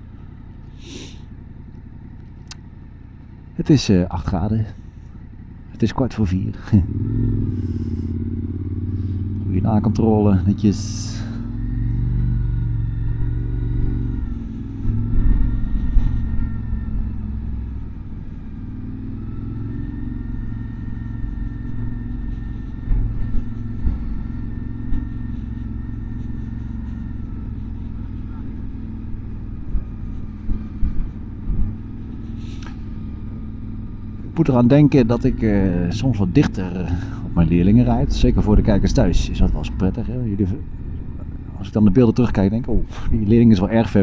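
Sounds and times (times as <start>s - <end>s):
motorcycle engine running: 0.0s - 44.0s
rumble on microphone: 11.2s - 33.4s, 34.0s - 44.0s.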